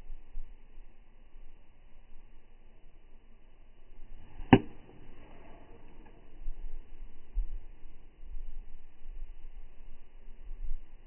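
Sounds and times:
golf club striking ball: 4.4s - 5.1s.

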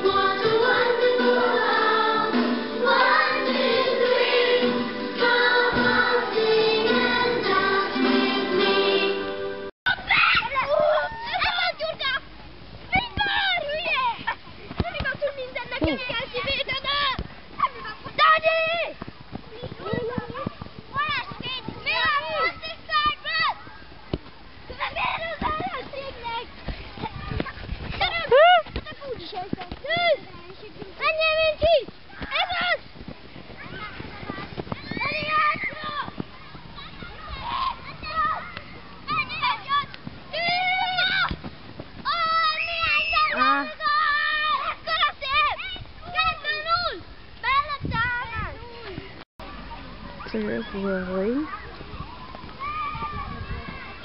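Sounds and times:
children singing together: 0.0s - 9.7s
child shouting: 9.9s - 12.2s, 42.1s - 48.5s.

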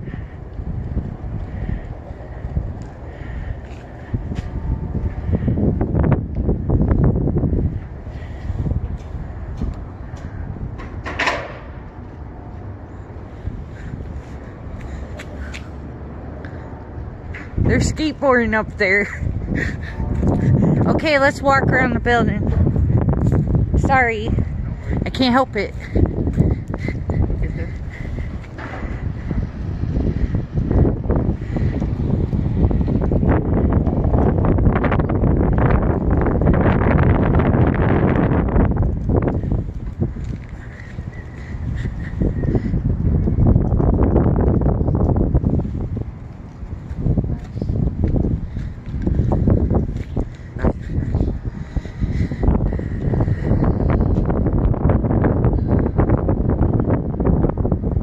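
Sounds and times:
wind on microphone: 0.0s - 58.0s.

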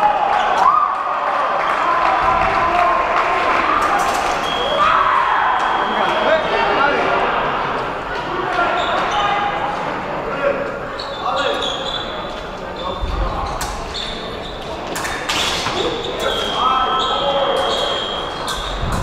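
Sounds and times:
voices in echoing hall: 0.0s - 19.0s.

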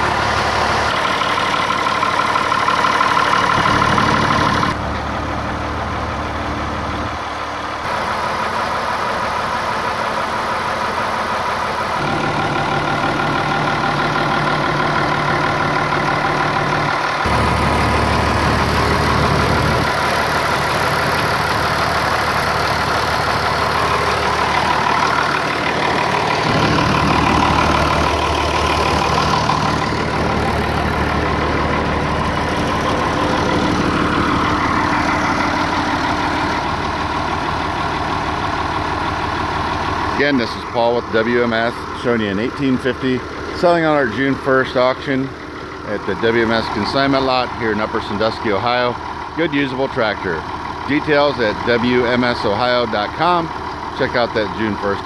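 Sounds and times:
tractor engine idling: 0.0s - 55.0s.

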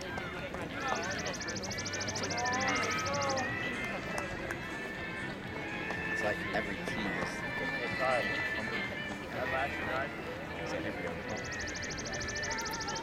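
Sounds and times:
spectators chattering: 0.0s - 13.0s
thin steady high tone: 11.3s - 13.0s.

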